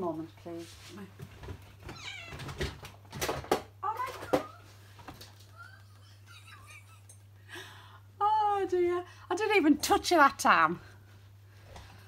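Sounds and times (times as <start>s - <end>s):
cat meowing: 1.9s - 2.6s.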